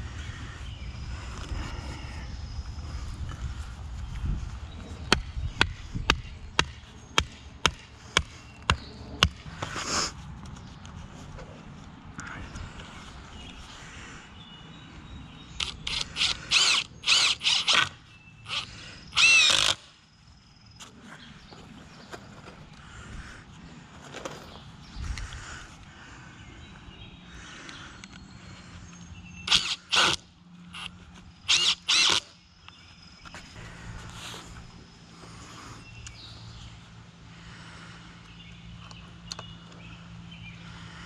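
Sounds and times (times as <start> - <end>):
cordless drill motor whirring: 15.6 - 19.9, 29.5 - 30.2, 30.8 - 32.3.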